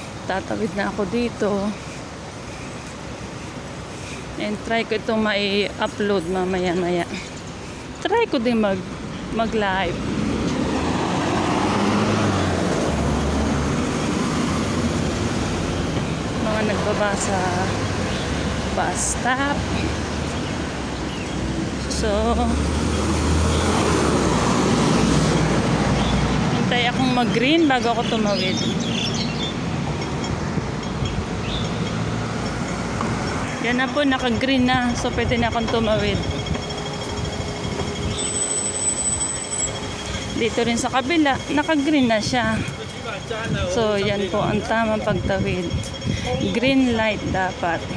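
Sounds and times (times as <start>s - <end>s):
passing vehicles: 0.0s - 47.9s
road traffic rumble: 0.0s - 47.9s.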